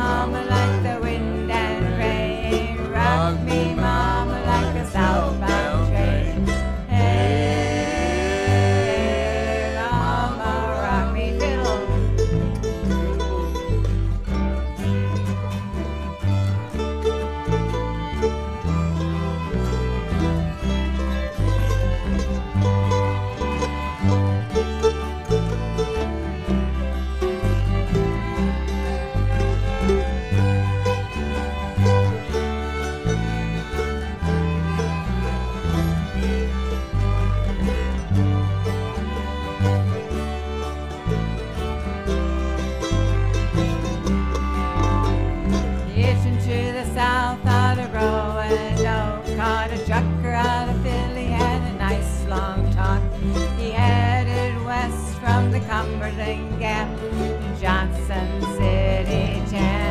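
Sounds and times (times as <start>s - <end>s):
fiddles playing tune: 0.0s - 59.9s
plucked bass line: 0.0s - 59.9s
strummed acoustic guitars: 0.0s - 59.9s.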